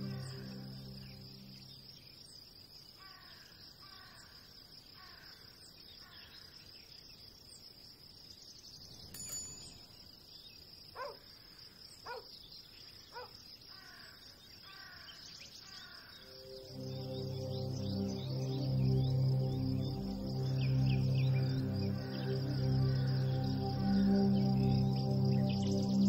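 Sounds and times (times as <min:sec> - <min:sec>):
high insect drone: 0:00.0 - 0:04.4, 0:13.2 - 0:26.0
crow cawing: 0:03.0 - 0:04.3, 0:05.0 - 0:05.5, 0:13.7 - 0:16.2.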